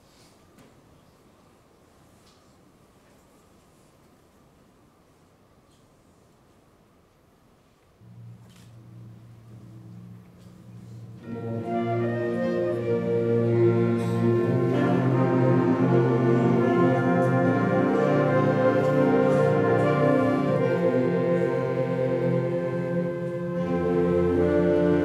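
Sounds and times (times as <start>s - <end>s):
concert band playing sustained chords: 8.0s - 25.0s.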